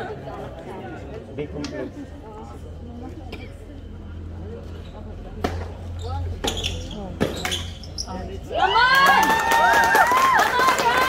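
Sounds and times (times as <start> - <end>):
rackets hitting tennis ball: 5.4 - 5.8, 6.4 - 7.8
spectators shouting and cheering: 8.4 - 11.0.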